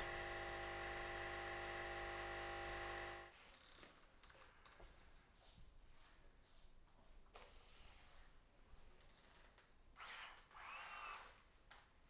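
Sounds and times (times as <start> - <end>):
prosthetic hand motor whirring: 10.0 - 11.4.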